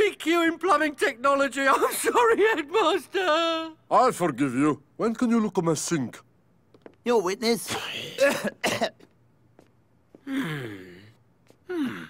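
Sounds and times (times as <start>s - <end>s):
man coughing: 7.7s - 9.1s.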